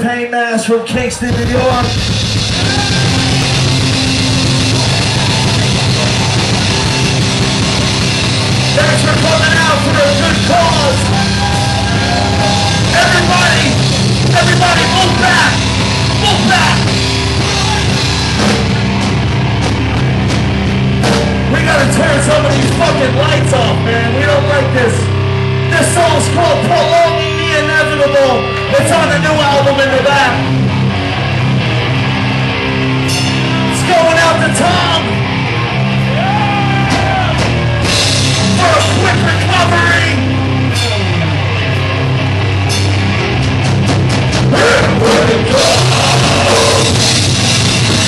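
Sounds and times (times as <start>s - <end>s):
distorted electric guitar and bass: 0.9s - 48.0s
metal band playing live: 0.9s - 48.0s
drum kit crashes: 1.2s - 23.7s, 33.0s - 33.9s, 40.7s - 41.4s, 42.7s - 48.0s.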